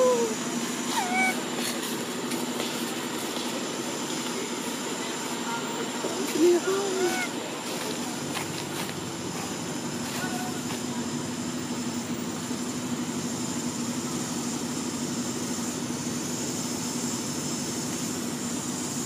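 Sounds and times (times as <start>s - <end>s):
high constant hiss: 0.0s - 19.0s.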